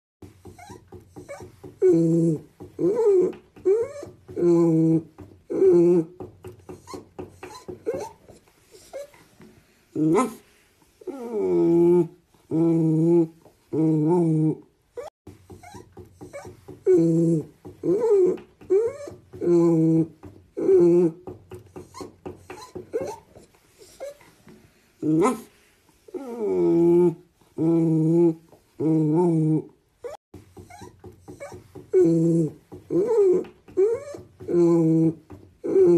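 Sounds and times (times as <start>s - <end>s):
dog whining: 0.4s - 9.3s, 10.0s - 24.4s, 25.0s - 35.9s.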